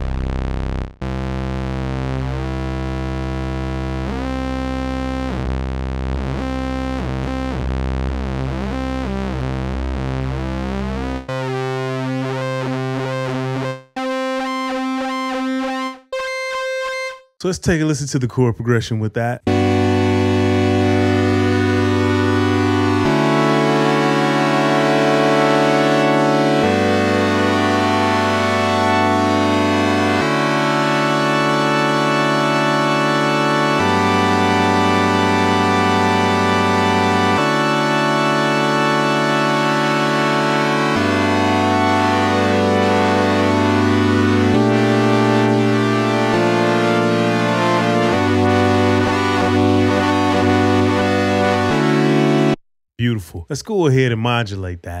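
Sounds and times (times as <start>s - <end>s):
buzzy synthesizer chords: 0.0s - 17.4s, 19.4s - 54.2s.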